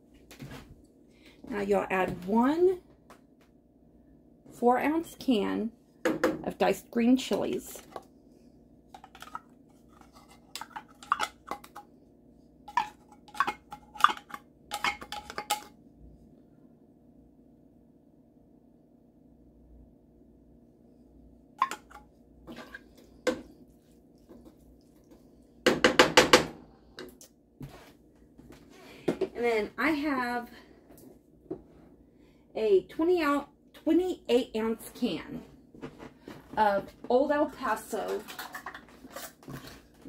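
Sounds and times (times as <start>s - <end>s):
spatula scraping frying pan: 9.0s - 11.7s, 21.6s - 23.1s.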